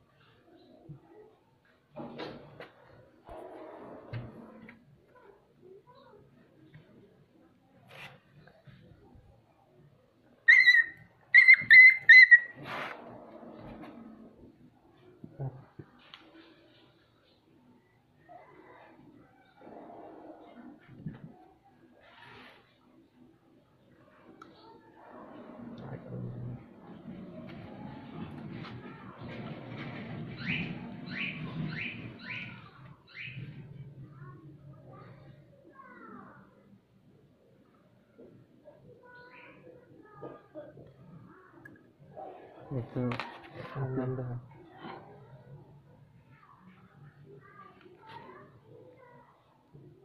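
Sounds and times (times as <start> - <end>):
high-pitched animal calls: 10.5 - 12.6.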